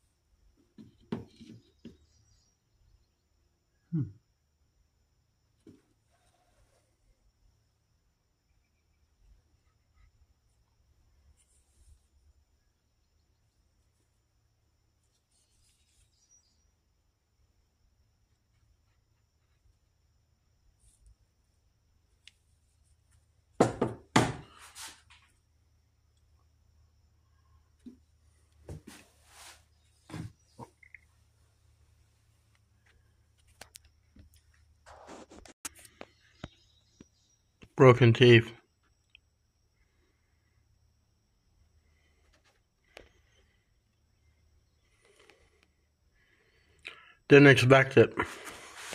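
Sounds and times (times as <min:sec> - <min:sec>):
short rustle: 0:48.2 - 0:48.9.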